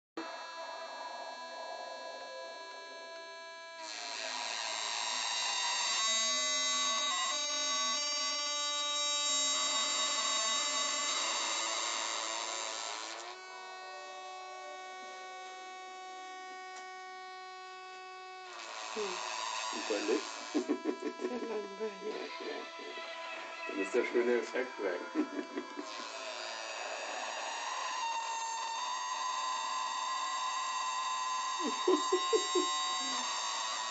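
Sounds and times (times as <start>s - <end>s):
buzzy synthesizer drone: 0.2s - 13.8s, 14.4s - 33.9s.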